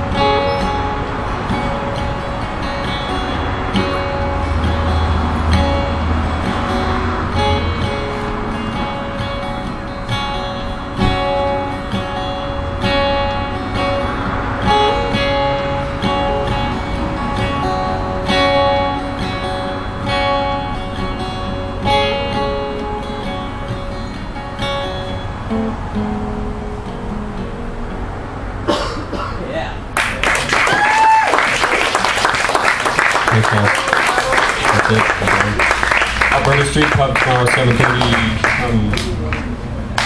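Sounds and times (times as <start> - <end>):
acoustic guitar strumming chords: 0.0 - 30.0, 34.7 - 40.0.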